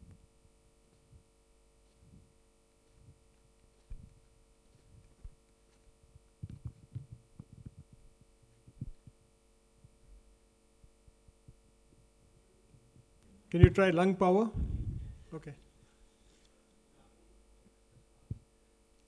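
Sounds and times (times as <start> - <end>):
faint steady hum: 0.0 - 19.0
microphone handling thumps: 3.8 - 5.4, 6.1 - 9.2, 13.6 - 13.9, 14.5 - 15.3.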